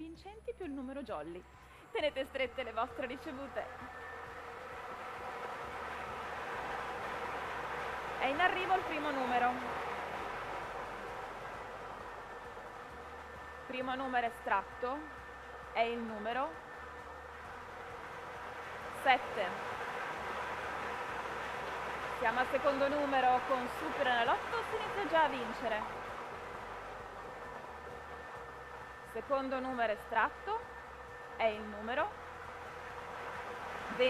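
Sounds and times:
faint hum: 0.0s - 34.0s
lottery balls mixing in drum: 3.1s - 34.0s.

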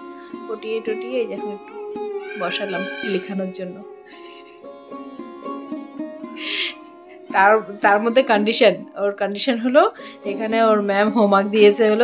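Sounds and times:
plucked string music: 0.0s - 12.0s.

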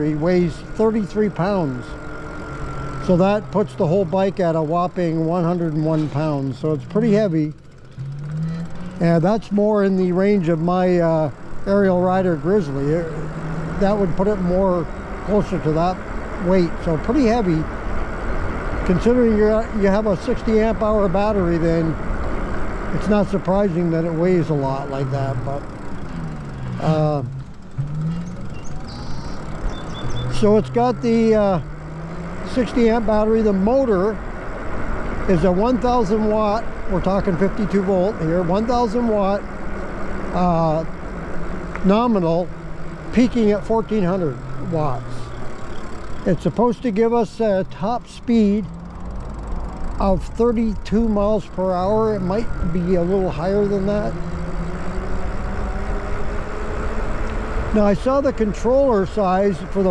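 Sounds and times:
electric motor hum: 0.0s - 47.6s, 48.2s - 59.9s
road noise: 0.0s - 59.9s
wind and tyre rumble: 0.0s - 59.9s.

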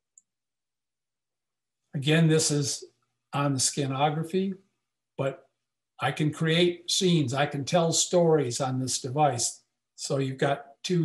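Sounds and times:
man speaking: 2.0s - 2.8s, 3.4s - 4.6s, 6.0s - 11.0s.

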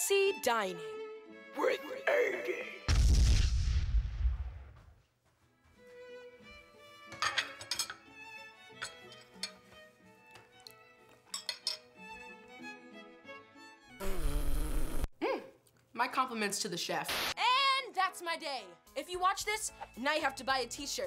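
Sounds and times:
explosion bang with deep rumble: 2.9s - 4.7s
gentle violin music: 5.7s - 7.2s, 8.0s - 11.1s, 11.9s - 14.0s.

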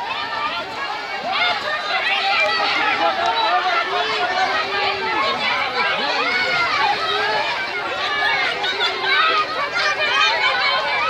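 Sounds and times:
crowd calling out: 0.0s - 11.0s.

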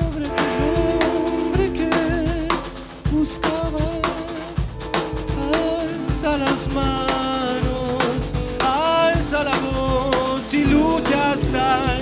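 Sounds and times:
drum kit beating: 0.0s - 12.0s
held electric guitar notes: 0.0s - 12.0s.

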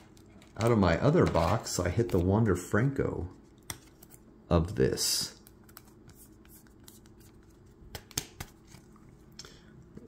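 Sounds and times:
plastic handling sounds: 0.0s - 2.6s.

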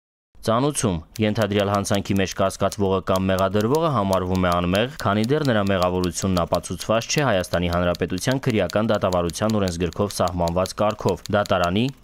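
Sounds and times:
person reading aloud: 0.4s - 12.0s.

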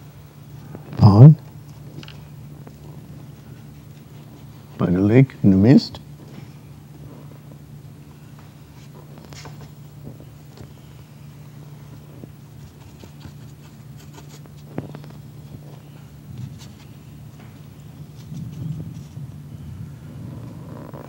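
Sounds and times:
low room hum: 0.0s - 21.0s
brush scratching on paper: 12.6s - 15.2s.

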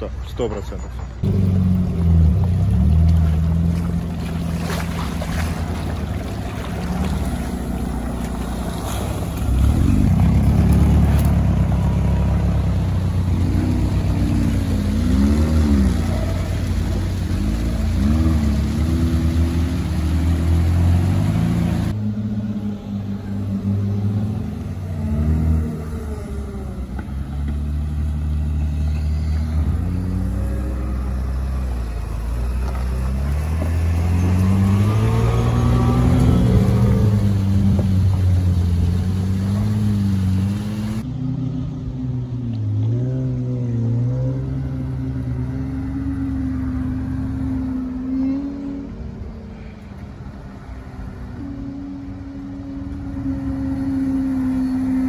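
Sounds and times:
off-road vehicle engines revving: 0.0s - 55.0s.

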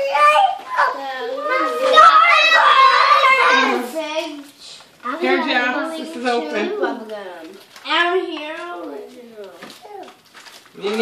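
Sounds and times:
young children talking: 0.0s - 10.2s.

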